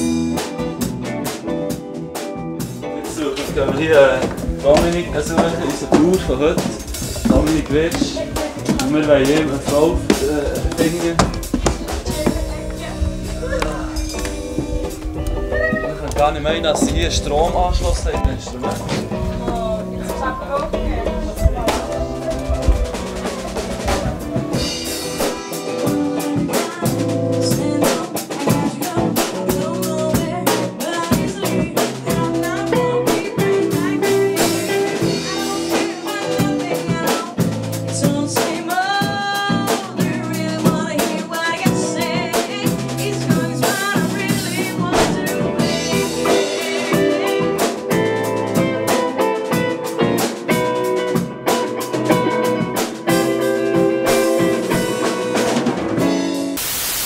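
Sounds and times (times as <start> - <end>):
band playing: 0.0 - 57.0
drum kit beat: 0.0 - 57.0
woman singing: 7.2 - 9.6, 11.3 - 14.3, 18.7 - 49.3.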